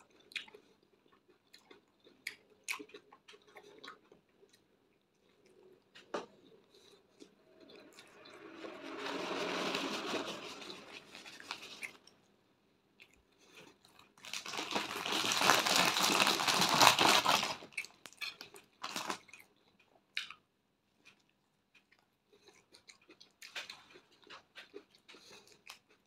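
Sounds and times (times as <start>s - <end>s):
chewing bread: 0.0s - 8.6s, 10.6s - 26.0s.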